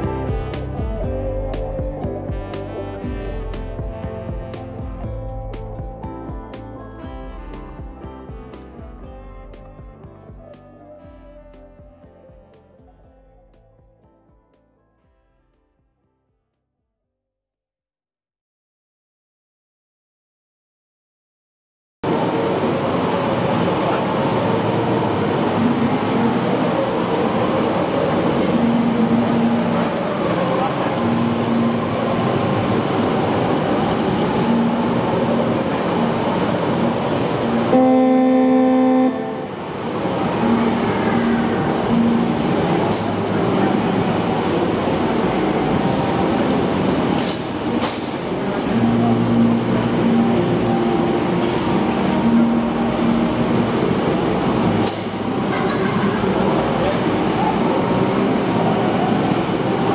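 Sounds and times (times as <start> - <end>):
horn-like tone: 0.0 - 1.5, 2.2 - 5.4, 7.0 - 9.6, 10.9 - 12.6, 28.4 - 47.8.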